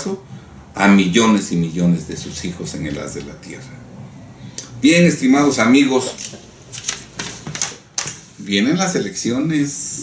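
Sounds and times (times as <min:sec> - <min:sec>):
paper rustling: 0:06.1 - 0:08.4.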